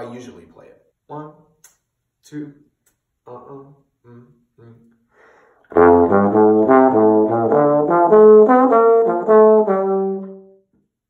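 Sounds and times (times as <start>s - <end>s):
bass trombone playing jazz line: 5.7s - 10.5s.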